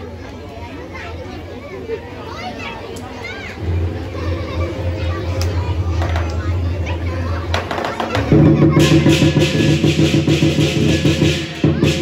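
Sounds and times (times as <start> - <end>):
cymbals crashing: 3.6 - 12.0
drum rapid beat: 7.5 - 12.0.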